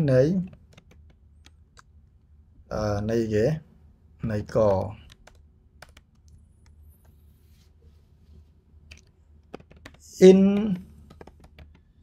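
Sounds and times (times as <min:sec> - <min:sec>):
low steady hum: 0:00.0 - 0:12.0
keyboard key clicks: 0:00.5 - 0:01.9, 0:08.9 - 0:11.9.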